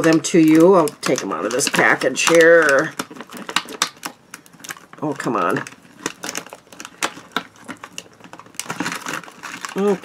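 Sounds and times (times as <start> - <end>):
packaging clicks and crackles: 0.0 - 10.0.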